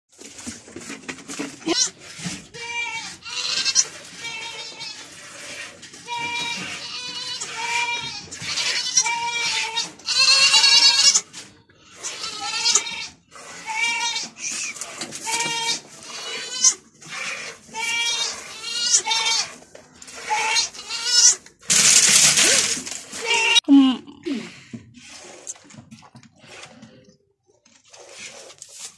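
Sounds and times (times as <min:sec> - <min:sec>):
goats bleating: 0:02.6 - 0:05.1, 0:06.0 - 0:11.3, 0:11.9 - 0:14.4, 0:15.2 - 0:16.9, 0:17.7 - 0:19.6, 0:20.2 - 0:21.4.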